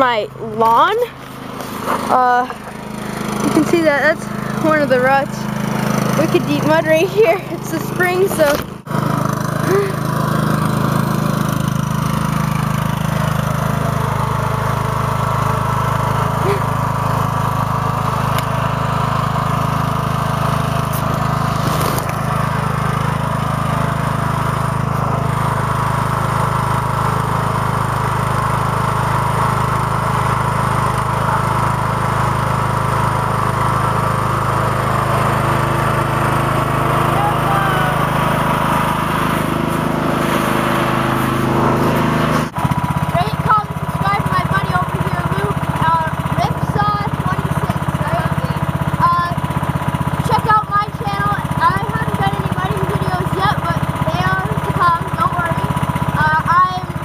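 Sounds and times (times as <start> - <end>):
lawn tractor engine running: 0.0 - 57.0.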